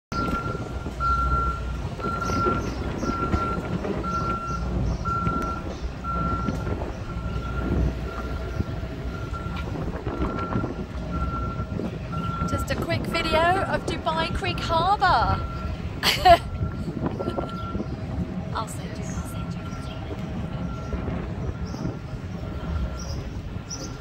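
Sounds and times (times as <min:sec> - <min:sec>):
low background rumble: 0:00.1 - 0:24.0
vehicle reversing alarm beeping: 0:00.1 - 0:24.0.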